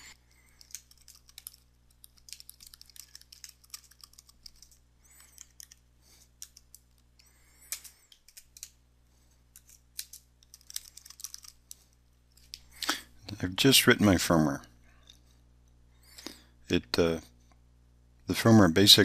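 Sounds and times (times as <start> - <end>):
keyboard typing: 0.0 - 5.8, 6.4 - 7.0, 7.7 - 8.8, 9.6 - 11.8.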